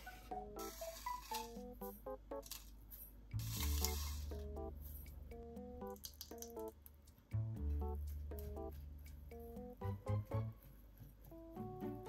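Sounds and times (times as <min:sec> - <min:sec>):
background music: 0:00.0 - 0:02.7, 0:03.3 - 0:12.0
flakes shaken from a jar: 0:00.6 - 0:01.6, 0:03.4 - 0:04.6.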